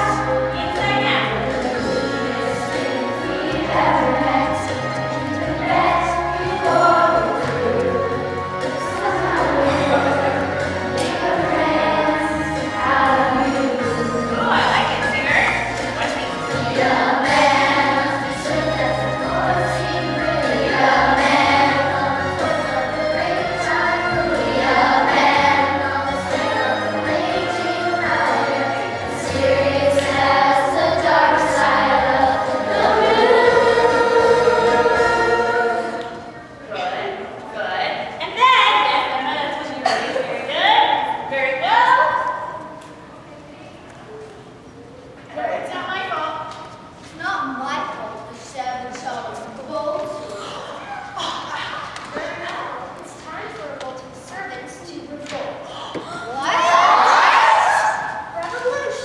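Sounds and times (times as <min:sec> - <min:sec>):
musical accompaniment: 0:00.0 - 0:36.8
choir singing held notes: 0:00.0 - 0:37.4.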